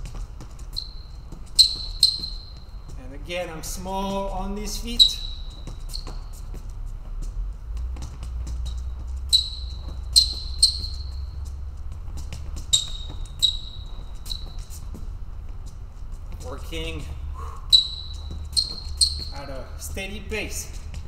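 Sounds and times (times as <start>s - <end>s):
light footsteps: 0.0s - 21.0s
sneakers squeaking on floor: 0.0s - 21.0s
steady low hum: 0.0s - 21.0s.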